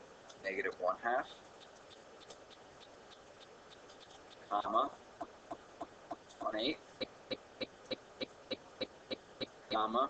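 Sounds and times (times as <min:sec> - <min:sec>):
steady pitched ticking: 0:00.2 - 0:10.0.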